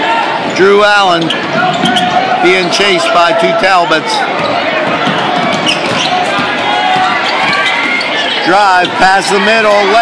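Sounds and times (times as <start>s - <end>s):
loud crowd noise and voices: 0.0s - 10.0s
basketball dribbled on hardwood: 4.3s - 8.0s.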